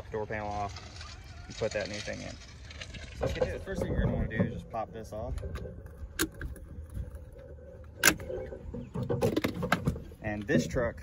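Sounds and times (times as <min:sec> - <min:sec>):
plastic rustling: 0:00.0 - 0:04.2.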